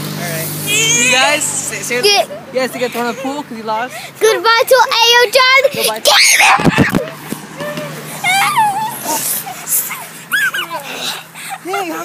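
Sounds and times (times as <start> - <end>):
children squealing: 0.6 - 2.3, 5.8 - 7.0, 7.6 - 11.6.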